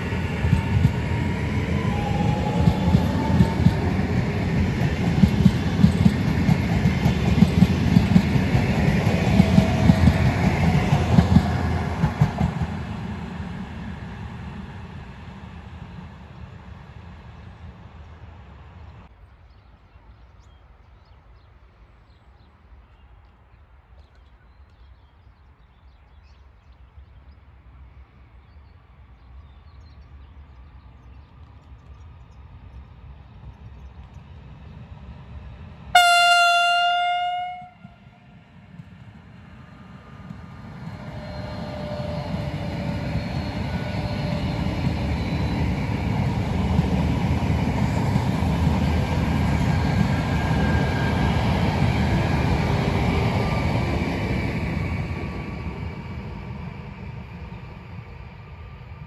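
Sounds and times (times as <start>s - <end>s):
high-speed train passing: 0.0s - 19.3s, 26.4s - 59.0s
train horn blast: 35.9s - 38.3s.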